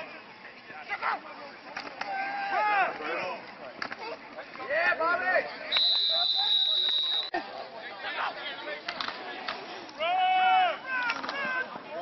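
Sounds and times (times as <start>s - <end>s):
people shouting: 2.0s - 3.2s, 10.0s - 12.0s
referee's whistle blast: 5.7s - 7.3s.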